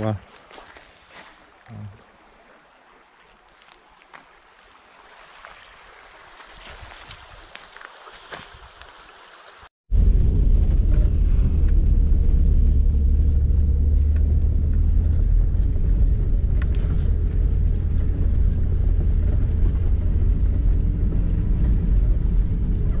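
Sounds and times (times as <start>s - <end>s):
car driving rumble from inside: 9.9s - 23.0s.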